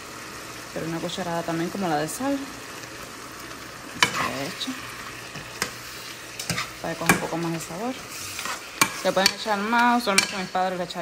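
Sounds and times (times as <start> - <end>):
food sizzling in a frying pan: 0.0 - 11.0
spoon stirring and scraping: 4.0 - 10.6
spoon clinking against pan: 10.1 - 10.5.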